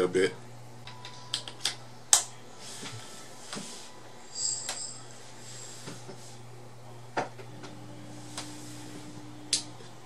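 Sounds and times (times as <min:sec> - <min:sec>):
steady low hum: 0:00.0 - 0:10.0
brief high ringing: 0:04.3 - 0:05.2.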